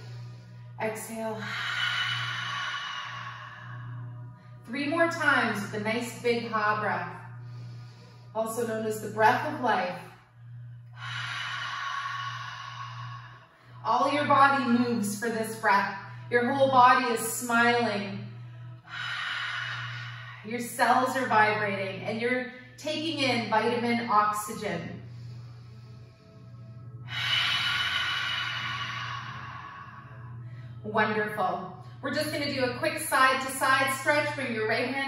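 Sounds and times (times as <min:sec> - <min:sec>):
woman's breathy exhale: 0:00.0 - 0:04.6, 0:27.1 - 0:30.8.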